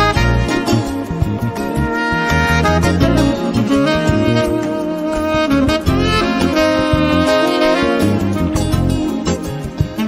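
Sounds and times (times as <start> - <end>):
bass line: 0.0 - 10.0
saxophone holding long note: 0.0 - 10.0.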